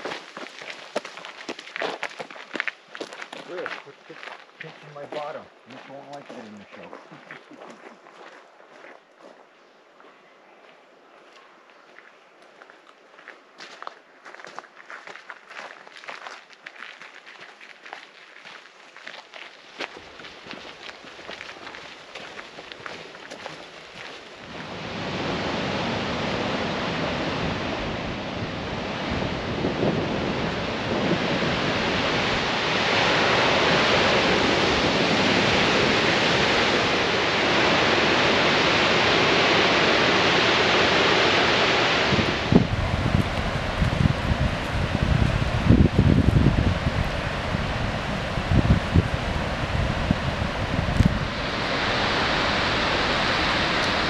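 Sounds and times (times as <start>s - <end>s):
wind buffeting microphone: 22.2s - 54.0s
waterfall rushing: 22.4s - 54.0s.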